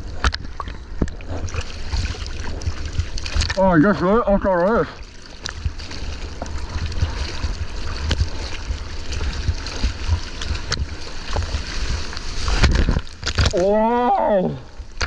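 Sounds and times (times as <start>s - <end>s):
water splashing around surfboard: 0.0s - 15.0s.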